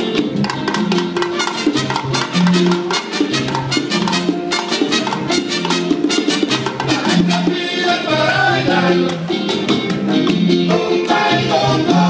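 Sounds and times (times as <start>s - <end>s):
bass: 0.0s - 12.0s
bongos and congas: 0.0s - 12.0s
trumpets playing: 1.2s - 7.6s.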